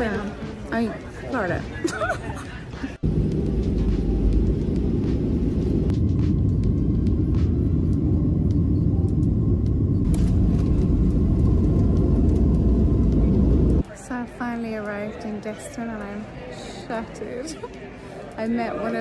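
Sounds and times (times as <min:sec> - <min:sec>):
jet engines rumbling: 0:03.0 - 0:13.8.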